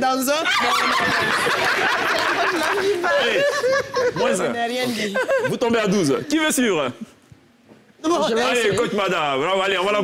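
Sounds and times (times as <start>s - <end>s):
people laughing: 0.4s - 6.3s.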